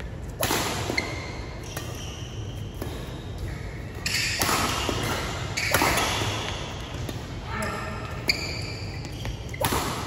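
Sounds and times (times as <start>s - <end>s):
racket striking shuttlecock: 0.3s - 7.3s, 9.0s - 10.0s.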